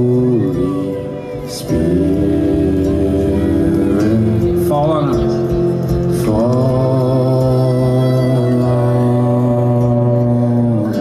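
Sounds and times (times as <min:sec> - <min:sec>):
acoustic guitar: 0:00.0 - 0:11.0
low accompaniment: 0:00.0 - 0:11.0
man singing: 0:00.0 - 0:11.0.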